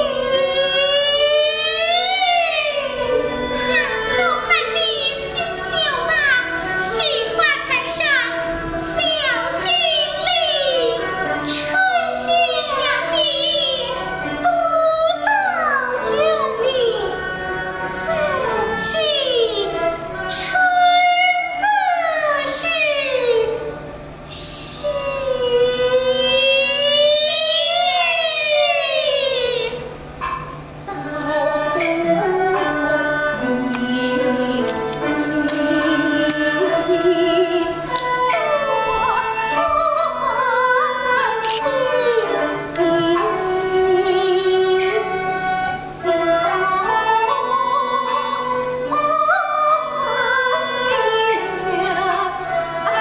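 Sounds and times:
woman singing opera high note: 0:24.3 - 0:53.0.

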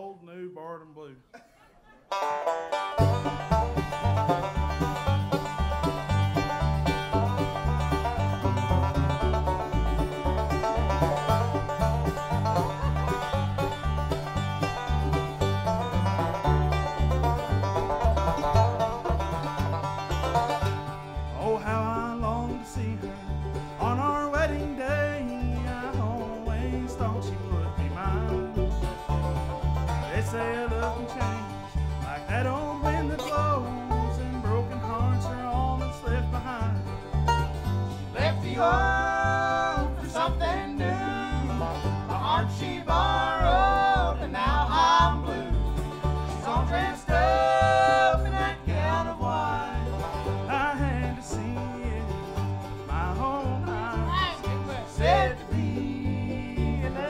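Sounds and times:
mandolin: 0:01.4 - 0:57.0
picked banjo: 0:01.6 - 0:57.0
plucked upright bass: 0:02.1 - 0:57.0
strummed acoustic guitar: 0:02.1 - 0:57.0.

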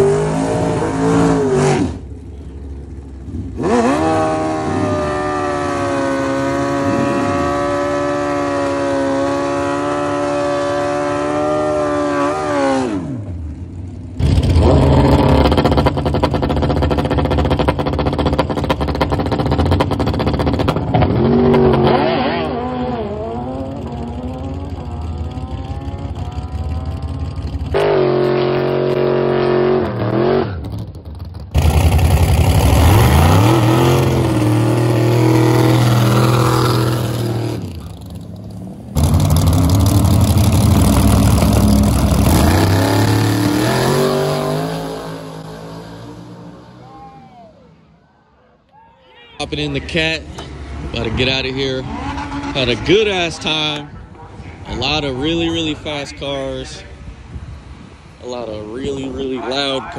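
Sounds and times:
racing engines revving: 0:00.0 - 0:47.9, 0:49.4 - 0:59.9.

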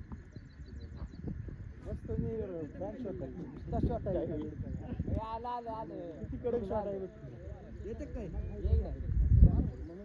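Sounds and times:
men talking and calling: 0:00.0 - 0:10.0
low rumble on microphone: 0:08.1 - 0:10.0.

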